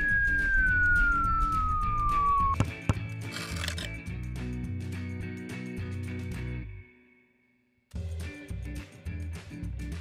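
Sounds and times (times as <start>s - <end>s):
cartoon falling whistle: 0.0s - 2.6s
background music: 0.0s - 10.0s.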